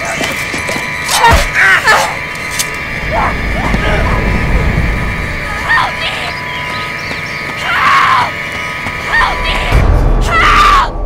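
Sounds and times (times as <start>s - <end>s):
droning music: 0.0s - 11.0s.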